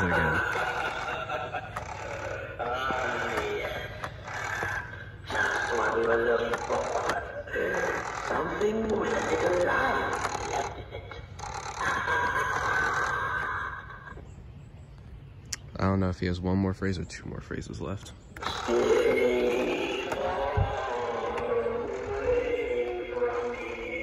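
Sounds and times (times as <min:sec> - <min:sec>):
speaker playing recorded voice: 0:00.0 - 0:00.8, 0:02.4 - 0:11.2, 0:15.7 - 0:24.0.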